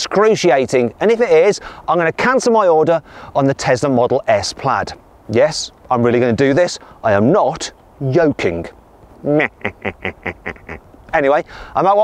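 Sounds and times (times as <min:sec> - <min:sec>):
person laughing: 0:09.2 - 0:10.9.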